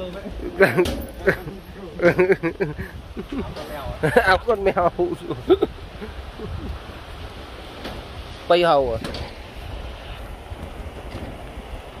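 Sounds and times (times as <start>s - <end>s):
stream rushing over rocks: 0.0s - 12.0s
wind buffeting microphone: 0.0s - 12.0s.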